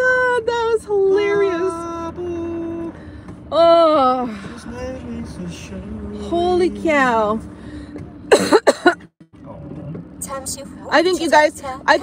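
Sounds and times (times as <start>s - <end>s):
woman coughing: 8.3s - 9.0s.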